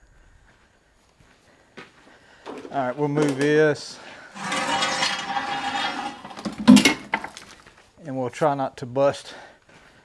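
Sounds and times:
metal chair scraping and squeaking: 4.3 - 7.3.

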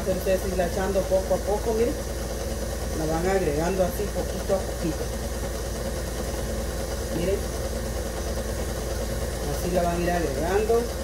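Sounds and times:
stand mixer running: 0.0 - 11.0.

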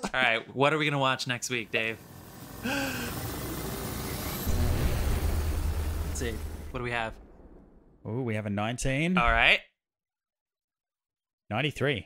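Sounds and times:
loud deep rumble: 2.0 - 8.4.

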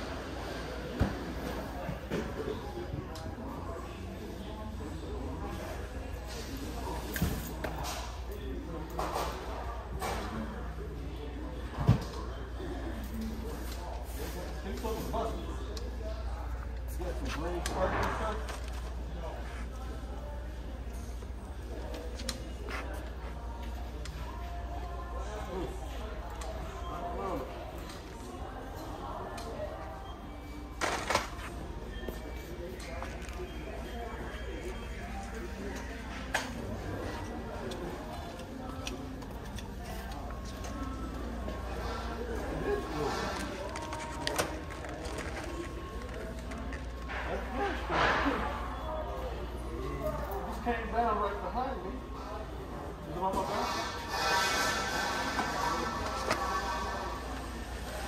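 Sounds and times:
faint background music: 0.0 - 58.0
faint indistinct voices: 0.0 - 58.0.

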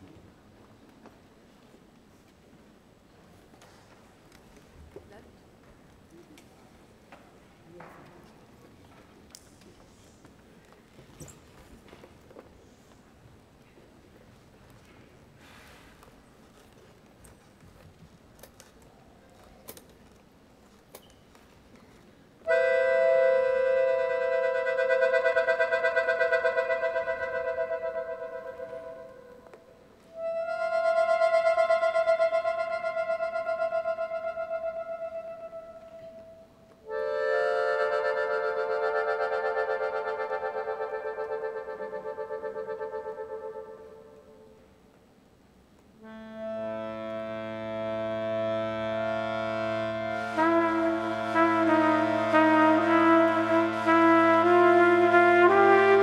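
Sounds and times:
accordion chords: 22.4 - 44.4, 46.0 - 56.0
trumpet: 22.4 - 44.5, 46.0 - 56.0.

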